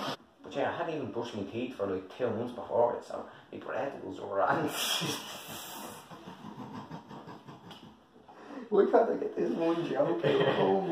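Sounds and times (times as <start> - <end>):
breathing: 3.3 - 3.5, 8.2 - 8.8
stifled laughter: 5.1 - 8.0.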